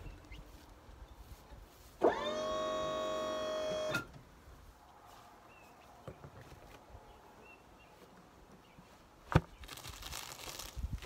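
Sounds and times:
small electric motor whining: 0:02.0 - 0:04.1.

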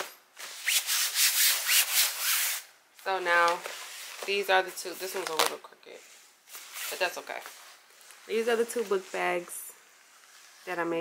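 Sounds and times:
hand rubbing fabric on velcro: 0:00.5 - 0:02.7, 0:05.1 - 0:11.0.

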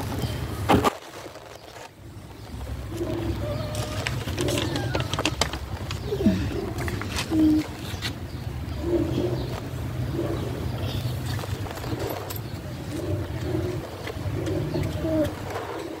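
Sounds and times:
doves cooing: 0:02.0 - 0:16.0.

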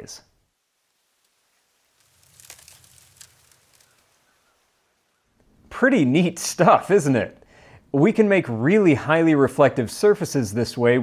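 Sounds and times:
faint crackling and crinkling: 0:00.0 - 0:05.9
small ticks: 0:02.0 - 0:04.6.

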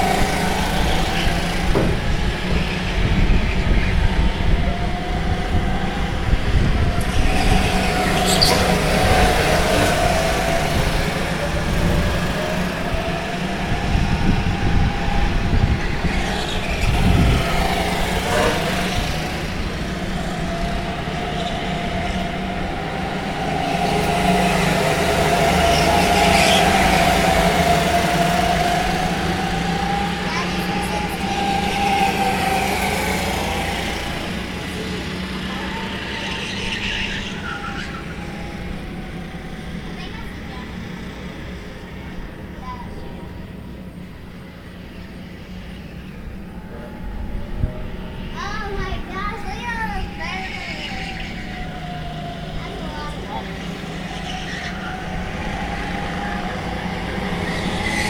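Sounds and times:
go-karts racing past: 0:00.0 - 0:58.0.

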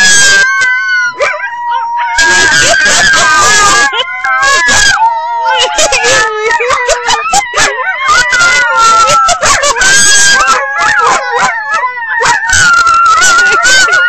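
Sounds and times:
dog howling: 0:00.0 - 0:14.0
people howling: 0:00.0 - 0:14.0.

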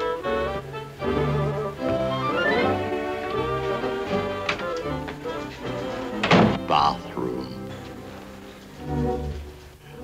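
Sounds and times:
soft orchestral strings: 0:00.0 - 0:10.0
wooden door thunk: 0:06.2 - 0:06.7.

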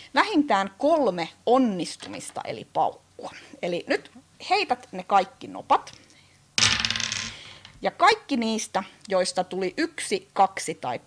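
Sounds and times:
dice clattering on tabletop: 0:06.6 - 0:07.8.

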